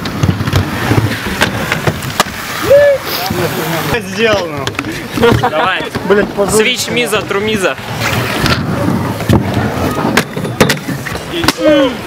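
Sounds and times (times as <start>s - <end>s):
skate frames clacking on ledge: 0.0s - 2.4s, 8.0s - 11.9s
skate wheels rolling on concrete: 0.0s - 12.0s
person shouting: 2.6s - 3.3s.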